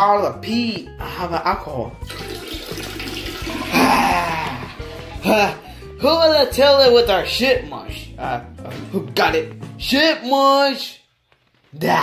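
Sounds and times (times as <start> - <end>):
toilet flushing: 2.0 - 5.2.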